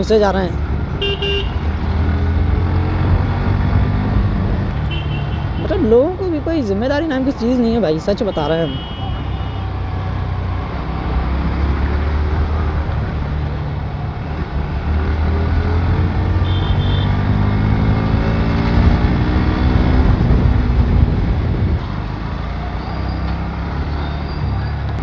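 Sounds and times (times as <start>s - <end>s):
motorcycle engine accelerating: 0.4s - 6.1s, 9.8s - 25.0s.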